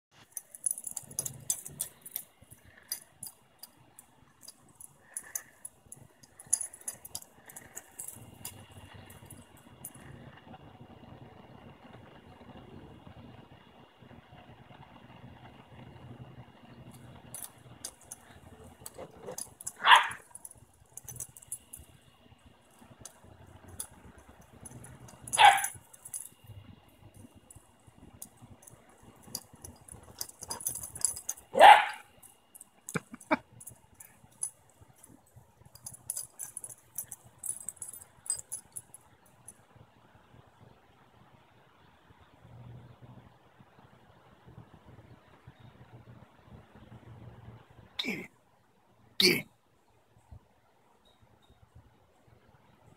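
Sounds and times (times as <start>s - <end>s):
collar tags jingling: 0.2s - 10.4s, 16.8s - 39.7s
puppies yapping: 18.9s - 20.3s, 25.3s - 25.8s, 30.2s - 32.1s.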